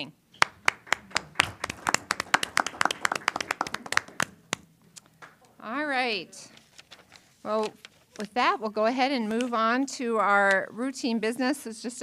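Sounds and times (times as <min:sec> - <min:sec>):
people clapping: 0:00.4 - 0:05.5.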